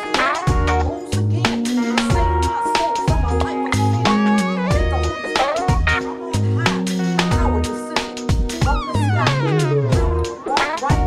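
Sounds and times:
backing track with drums and bass: 0.0s - 11.0s
person singing live: 0.0s - 11.0s.

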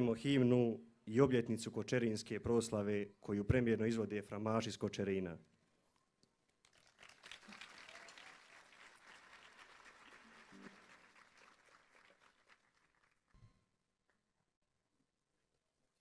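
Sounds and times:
faint audience applause: 6.7s - 13.4s.

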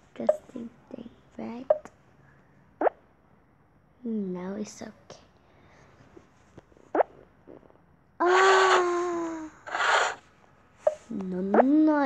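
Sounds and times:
girl sighing: 8.2s - 10.2s.

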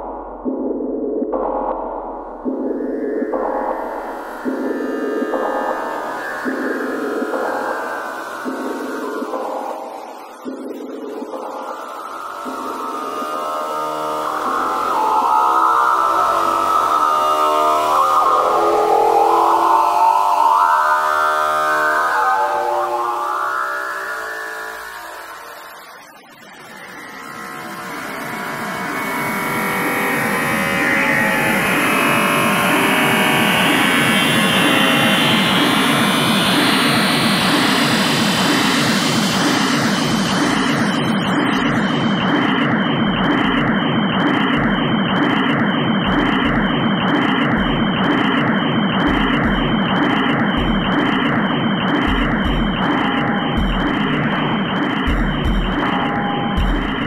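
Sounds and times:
dense synthesized sound: 0.0s - 19.8s, 28.8s - 57.0s
noisy drone with falling sweep: 0.0s - 57.0s.

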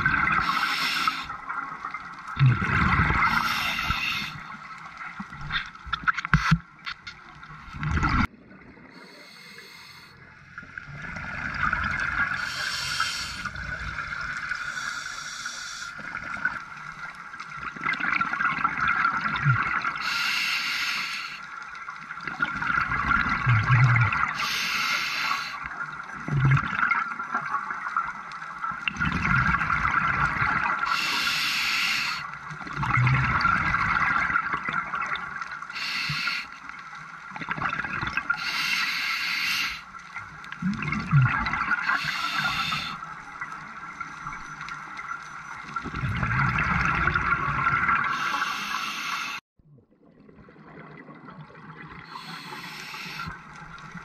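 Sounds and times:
exhaled bubbles gurgling: 0.0s - 9.6s, 10.5s - 20.2s, 21.6s - 54.0s
regulator breathing hiss: 0.4s - 1.3s, 3.3s - 4.5s, 9.0s - 10.2s, 12.4s - 13.6s, 14.6s - 16.1s, 20.0s - 21.5s, 24.4s - 25.7s, 30.9s - 32.3s, 35.7s - 36.6s, 38.4s - 39.9s, 41.8s - 43.0s, 48.1s - 49.4s, 52.1s - 53.5s.

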